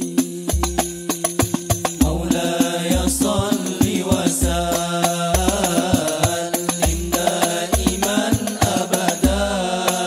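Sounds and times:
men singing in unison: 0:00.0 - 0:10.0
sharp higher drum beats: 0:00.0 - 0:10.0.

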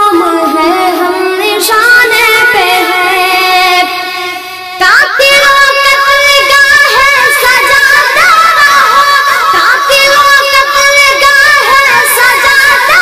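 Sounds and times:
boy singing devotional song: 0:00.0 - 0:13.0.

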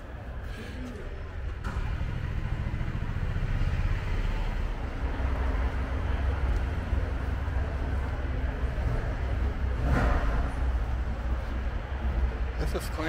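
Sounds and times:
murmur of voices: 0:00.0 - 0:03.6, 0:04.4 - 0:13.0
car engine rumbling: 0:00.0 - 0:13.0.

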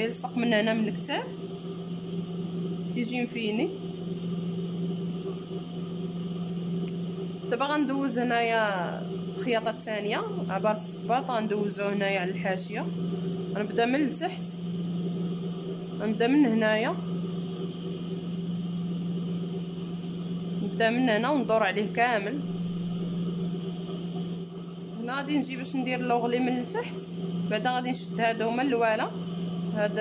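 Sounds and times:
sewing machine motor hum: 0:00.0 - 0:30.0.

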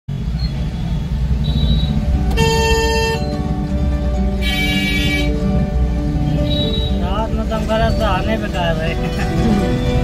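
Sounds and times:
motorbike engines rumbling: 0:00.1 - 0:10.0
street traffic: 0:00.1 - 0:10.0
vehicle horn honking: 0:01.4 - 0:03.4, 0:04.4 - 0:05.5, 0:06.3 - 0:07.0
high-pitched horns: 0:01.4 - 0:03.5, 0:04.3 - 0:05.6.

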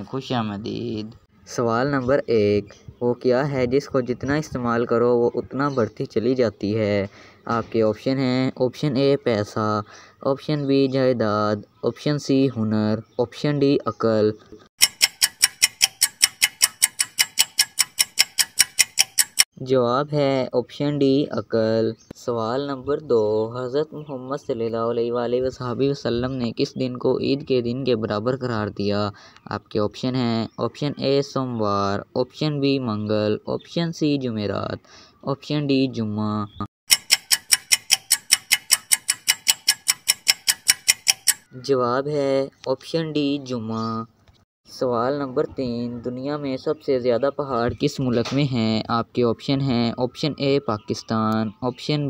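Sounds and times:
countdown timer ticking: 0:14.8 - 0:19.5, 0:36.9 - 0:41.5.

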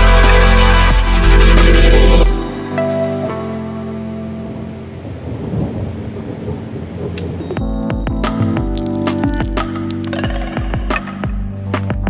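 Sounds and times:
low electronic beat: 0:00.0 - 0:03.5, 0:07.2 - 0:12.0
synth chords: 0:00.0 - 0:12.0
rain-like noise: 0:02.3 - 0:09.0
rumbling thunder: 0:04.5 - 0:09.0.

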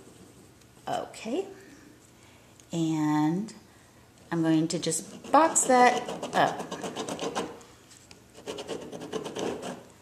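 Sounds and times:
pen scratching on card: 0:05.0 - 0:07.6, 0:08.4 - 0:09.8.

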